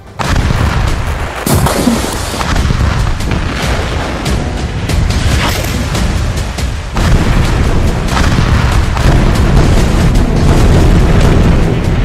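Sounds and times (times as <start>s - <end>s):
dramatic background music: 0.0s - 12.0s
deep booms: 5.9s - 12.0s.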